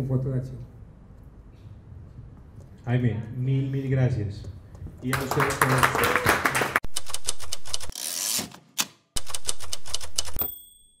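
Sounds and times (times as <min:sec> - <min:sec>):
typewriter keystrokes: 0:06.9 - 0:08.0, 0:08.8 - 0:10.5
typewriter carriage bell: 0:09.2 - 0:11.0.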